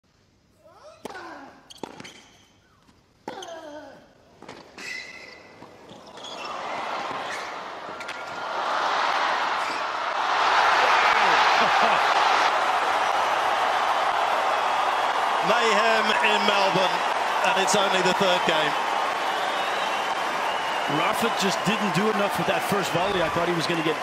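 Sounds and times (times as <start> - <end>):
crowd cheering and applause: 6.4 - 24.0.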